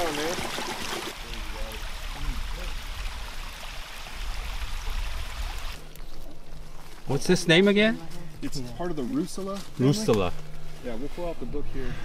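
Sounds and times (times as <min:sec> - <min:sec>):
creek running: 0:00.0 - 0:11.8.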